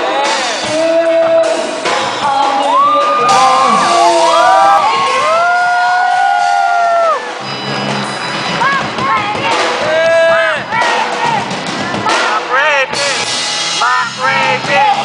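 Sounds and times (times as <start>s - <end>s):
live band playing: 0.0s - 15.0s
woman singing: 0.7s - 4.2s
audience whooping: 2.6s - 7.4s.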